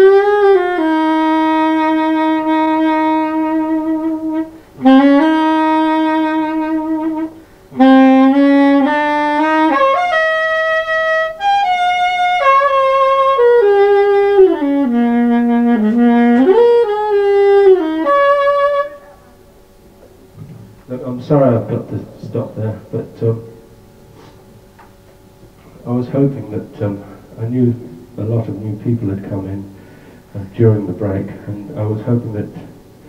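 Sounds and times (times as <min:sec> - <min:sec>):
soprano saxophone: 0:00.0 - 0:19.5.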